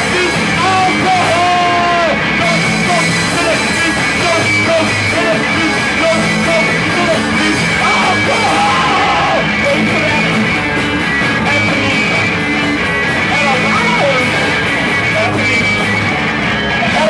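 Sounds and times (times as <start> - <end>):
shouted vocals: 0.0 - 10.3
punk rock band playing: 0.0 - 17.0.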